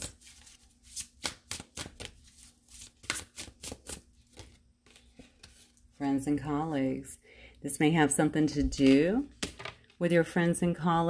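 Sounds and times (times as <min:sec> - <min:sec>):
cards being shuffled: 0:00.0 - 0:05.8.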